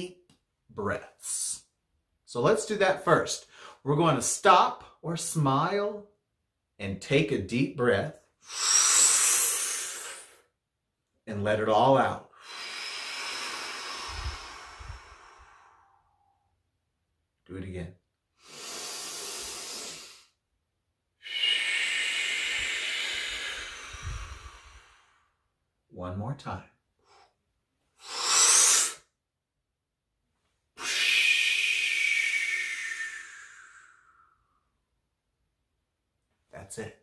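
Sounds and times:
man inhaling deeply: 8.4s - 10.5s, 12.3s - 16.4s, 18.4s - 20.4s, 21.2s - 25.5s, 28.0s - 29.1s, 30.8s - 34.8s
breath puffs on microphone: 12.4s - 16.0s, 21.3s - 25.2s
man exhaling slowly: 12.4s - 16.4s, 21.2s - 25.4s, 30.8s - 34.7s.

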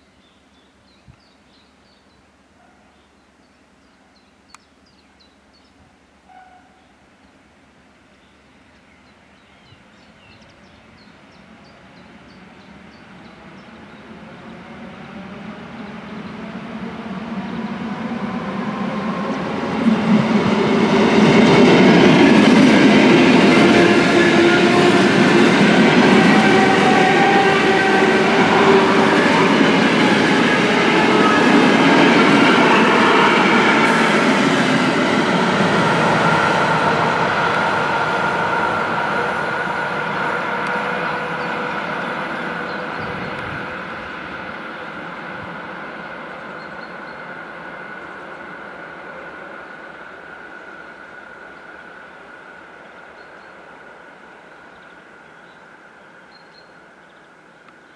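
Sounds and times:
train passing at speed: 12.4s - 52.9s
steady tones: 38.7s - 45.2s.

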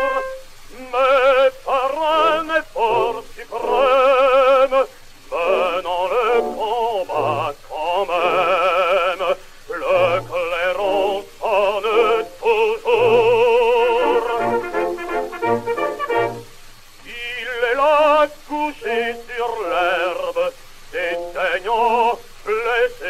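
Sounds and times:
instrumental accompaniment: 0.0s - 0.6s, 13.0s - 16.6s
man singing with vibrato: 0.0s - 23.0s.

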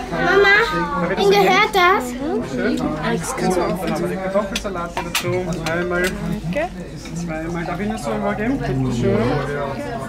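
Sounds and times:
plates and cutlery clinking: 3.3s - 8.1s.

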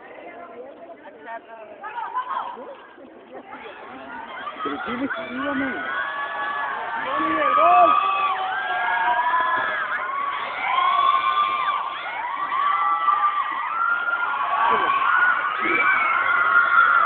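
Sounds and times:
young voices shouting and cheering: 1.8s - 17.0s.

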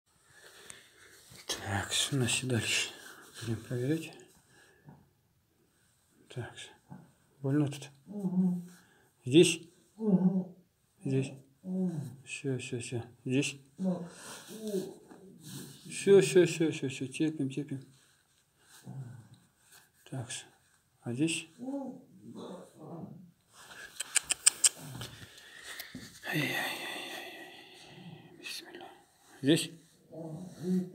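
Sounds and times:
man speaking: 1.5s - 4.2s, 6.3s - 6.8s, 7.4s - 8.0s, 9.3s - 9.6s, 11.0s - 15.0s, 15.8s - 17.8s, 20.0s - 21.7s, 26.2s - 27.8s, 28.4s - 30.9s.

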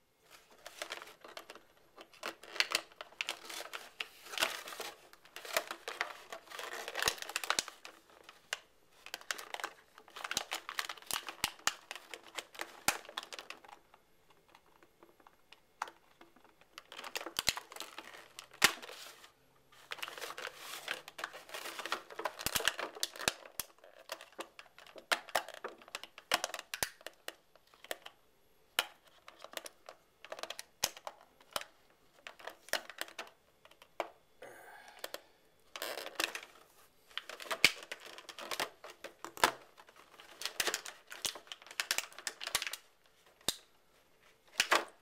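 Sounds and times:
plastic packaging crinkling: 0.2s - 28.2s, 35.0s - 45.0s
plastic blister tray crackling: 0.3s - 28.2s, 35.0s - 43.8s.

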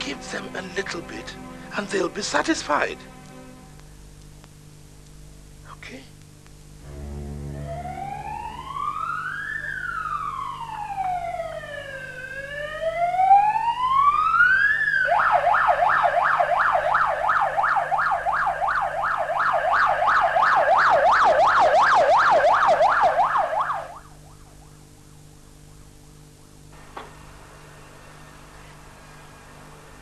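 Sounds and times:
police siren wailing and yelping: 7.6s - 24.9s.

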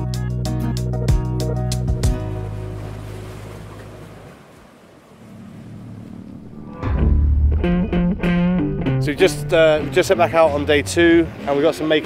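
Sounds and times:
background music: 0.0s - 3.2s, 6.5s - 12.0s
small waves washing onto sand: 2.1s - 6.4s.

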